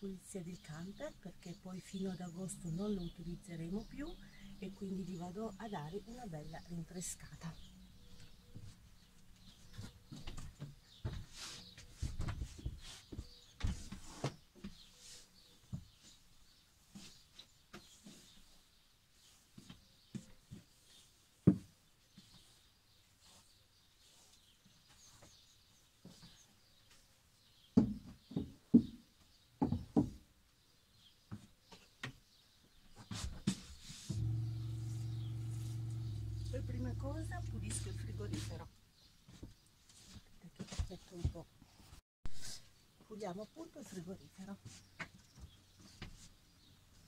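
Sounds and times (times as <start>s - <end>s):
steady low hum: 34.1s - 38.6s.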